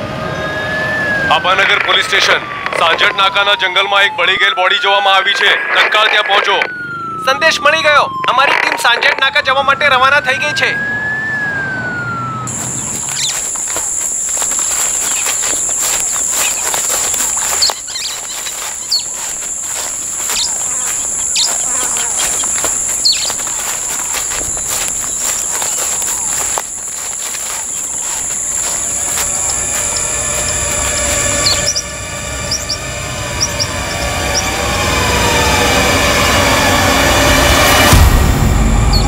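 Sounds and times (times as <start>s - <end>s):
footsteps rustling through leaves: 12.5s - 31.8s
bird chirps: 12.5s - 34.6s
insect drone: 12.5s - 39.0s
dramatic background music: 17.4s - 39.0s.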